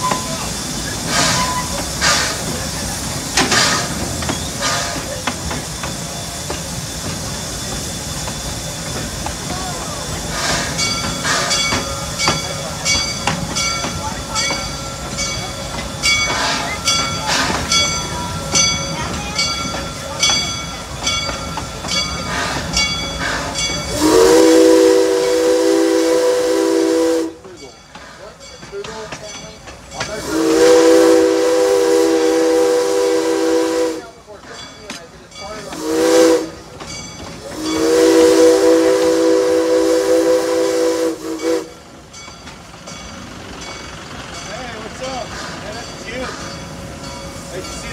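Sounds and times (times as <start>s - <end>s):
steam locomotive hiss and beat: 0.0s - 47.9s.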